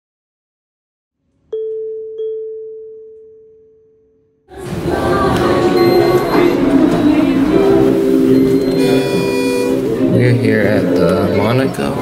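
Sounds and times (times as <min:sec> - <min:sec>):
chime tone ringing: 0:05.7 - 0:06.7, 0:07.6 - 0:10.2.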